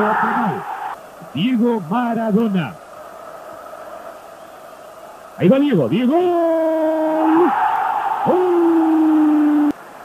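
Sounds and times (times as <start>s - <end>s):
man commentating with long calls: 0.0s - 10.0s
stadium crowd noise: 0.0s - 10.0s.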